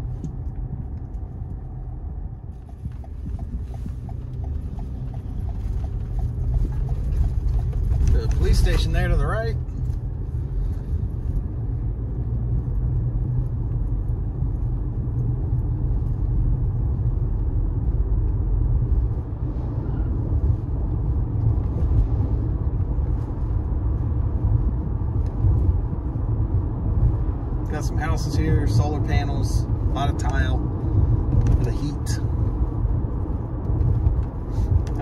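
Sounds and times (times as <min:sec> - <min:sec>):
car engine rumble: 0:00.0 - 0:35.0
road noise: 0:00.0 - 0:35.0.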